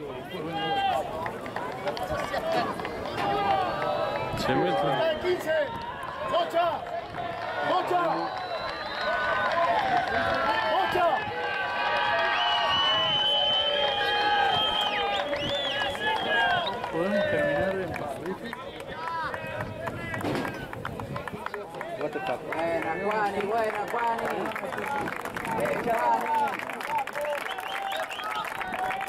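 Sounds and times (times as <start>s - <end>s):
people shouting calls: 13.5s - 17.8s.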